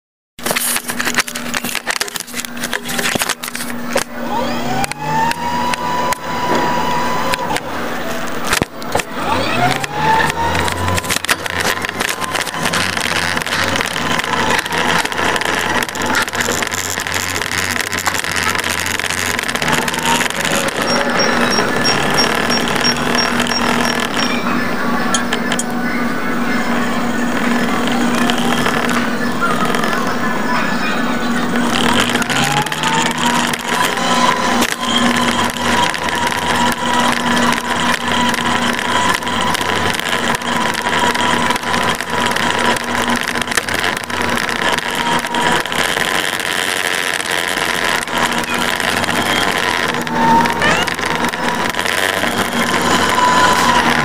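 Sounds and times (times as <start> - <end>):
background chatter: 0.4 - 54.0
mobility scooter motor whining: 0.4 - 54.0.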